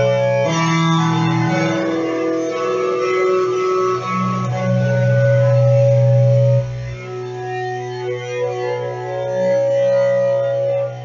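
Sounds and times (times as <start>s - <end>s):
electric guitar ringing notes: 0.0s - 11.0s.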